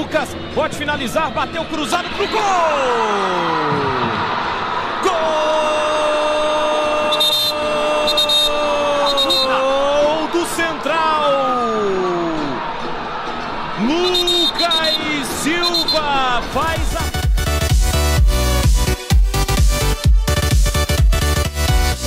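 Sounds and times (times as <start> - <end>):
crowd noise: 0.0 - 17.7
commentator shouting: 5.0 - 12.6, 13.8 - 17.3
electronic dance music: 13.8 - 22.0.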